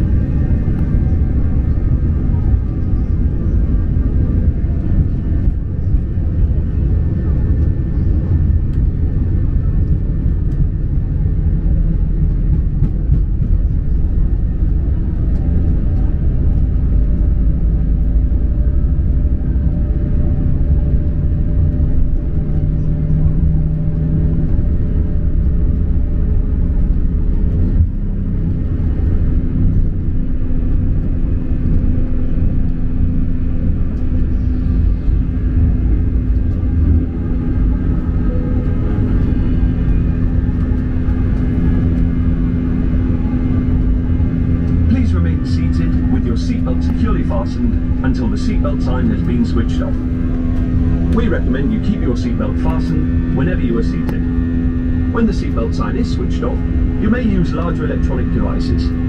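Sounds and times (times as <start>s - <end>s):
jet airliner cabin rumble: 0.0s - 59.0s.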